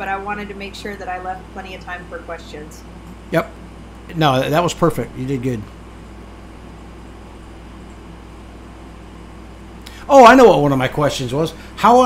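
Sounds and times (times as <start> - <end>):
steady background hum and hiss: 0.0 - 12.0.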